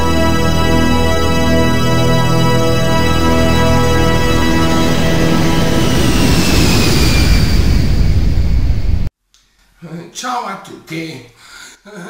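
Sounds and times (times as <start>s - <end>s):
held electronic chord: 0.0s - 9.1s
rumbling whoosh with falling whistle: 3.4s - 9.1s.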